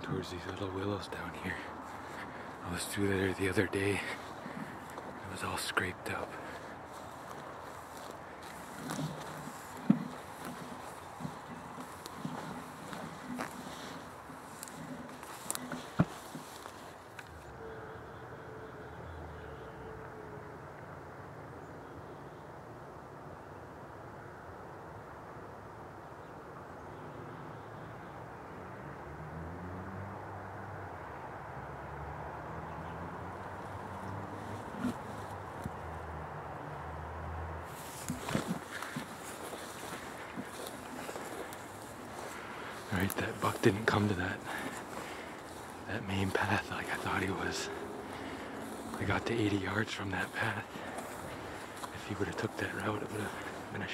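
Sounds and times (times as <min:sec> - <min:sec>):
footsteps rustling through dry weeds: 0:00.0 - 0:18.4, 0:33.4 - 0:36.9, 0:37.6 - 0:53.9.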